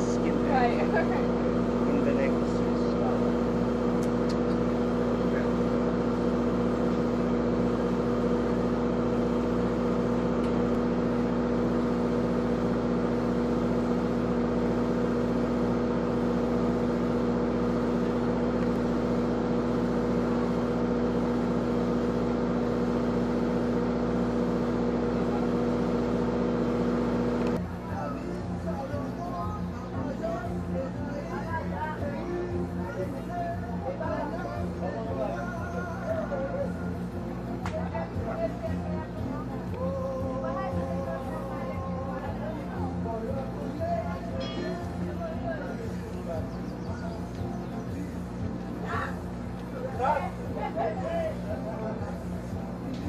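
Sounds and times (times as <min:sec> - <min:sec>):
boat engine droning: 0:00.0 - 0:53.0.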